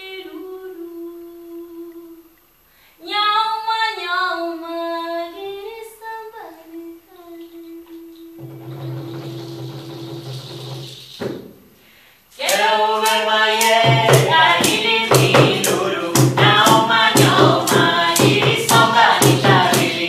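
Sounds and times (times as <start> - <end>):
woman singing unaccompanied: 0.0 - 2.3, 3.0 - 8.4, 12.3 - 20.0.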